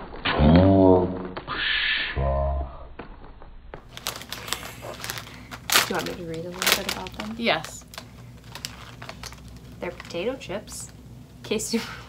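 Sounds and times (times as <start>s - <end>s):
short voice sound: 0.3s - 2.9s
plastic chip bag crinkling: 3.8s - 11.0s.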